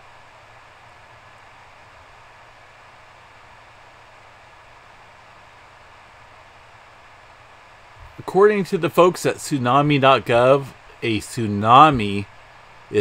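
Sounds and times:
faint hiss: 0.0 - 13.0.

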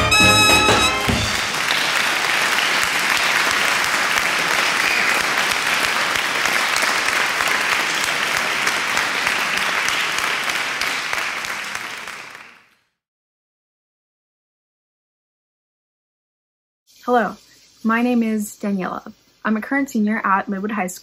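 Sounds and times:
crowd applauding: 0.0 - 12.8.

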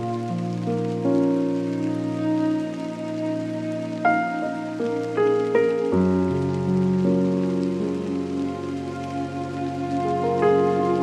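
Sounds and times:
rain sound: 0.0 - 11.0.

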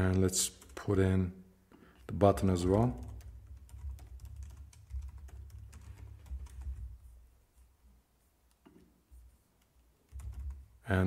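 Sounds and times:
typing on computer keyboard: 2.9 - 7.0, 9.7 - 10.7.

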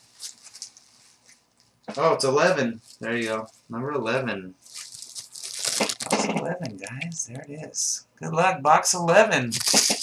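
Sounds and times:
wrapper crinkling and tearing: 0.0 - 1.7, 4.6 - 6.3, 9.5 - 10.0.

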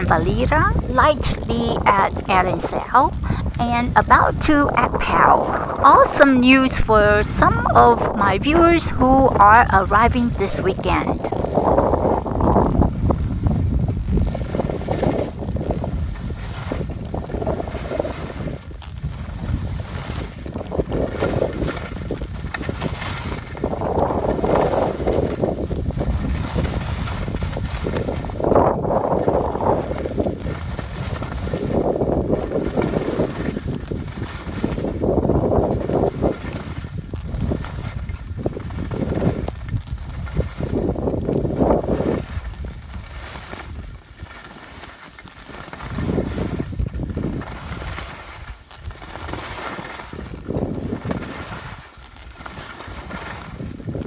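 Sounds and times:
skis swishing on snow: 0.0 - 54.0
wind rumble on microphone: 0.0 - 54.0.

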